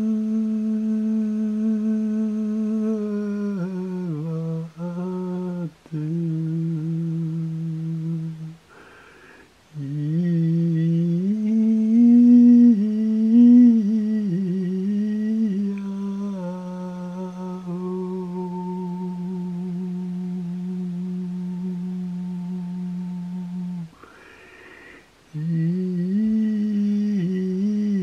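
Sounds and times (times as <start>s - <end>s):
low voice humming a chant: 0.0s - 8.8s, 9.7s - 24.2s, 25.3s - 28.0s.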